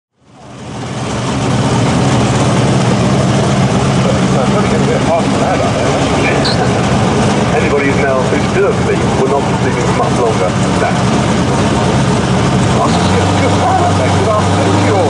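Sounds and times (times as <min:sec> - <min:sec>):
car engine idling: 0:00.2 - 0:15.0.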